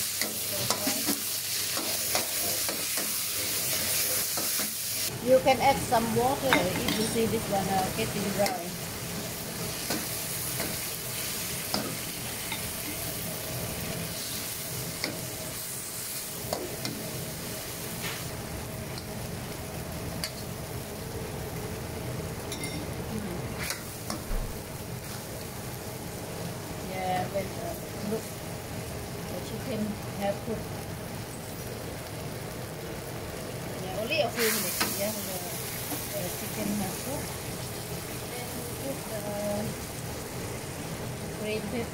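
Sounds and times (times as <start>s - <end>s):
chicken sizzling in a wok: 0.0s - 41.9s.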